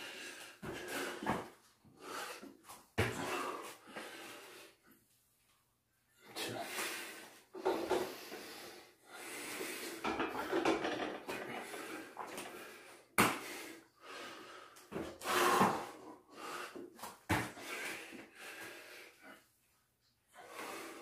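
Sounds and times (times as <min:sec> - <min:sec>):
man breathing hard: 0:00.0 - 0:04.9, 0:06.2 - 0:19.6, 0:20.3 - 0:21.0.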